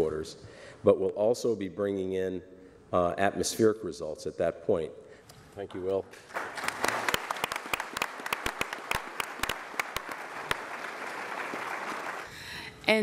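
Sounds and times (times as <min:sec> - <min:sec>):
audience applauding: 0:06.2 - 0:12.5.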